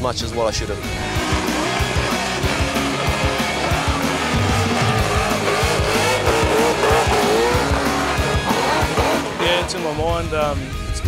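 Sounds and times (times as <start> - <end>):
backing music with steady beat: 0.8 - 9.8
tyres squealing: 0.8 - 10.0
car engine at high revs: 0.9 - 10.2.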